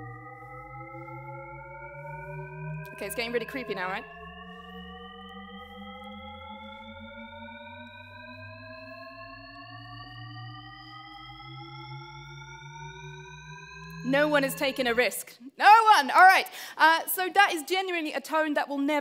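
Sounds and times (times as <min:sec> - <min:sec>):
endlessly rising pure tones: 0:00.0 - 0:15.2.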